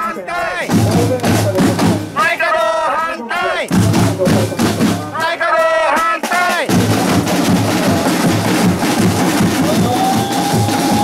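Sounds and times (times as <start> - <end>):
shouted chanting: 0.0 - 1.0, 2.1 - 8.2, 9.4 - 11.0
bass and snare drums beating: 0.6 - 2.4, 3.6 - 11.0.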